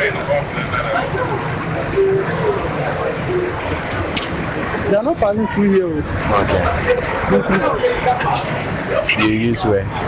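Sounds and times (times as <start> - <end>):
faint voices: 0.0 - 10.0
roadside rumble with hiss: 0.0 - 10.0.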